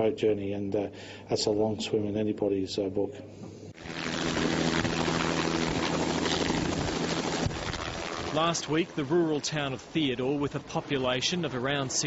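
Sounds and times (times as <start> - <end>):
helicopter rotor running: 3.8 - 9.9.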